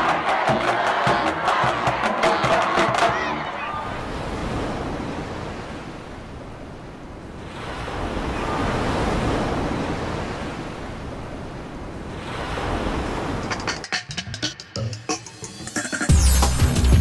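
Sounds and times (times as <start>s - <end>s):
ocean waves rushing: 0.0s - 16.1s.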